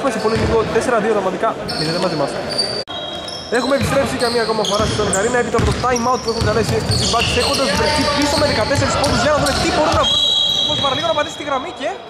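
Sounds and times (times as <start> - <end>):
people talking in a gym: 0.0 - 12.0.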